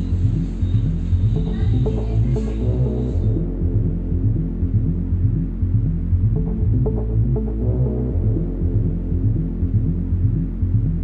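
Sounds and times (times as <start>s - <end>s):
low drone: 0.0s - 11.0s
pulsing beat: 0.0s - 11.0s.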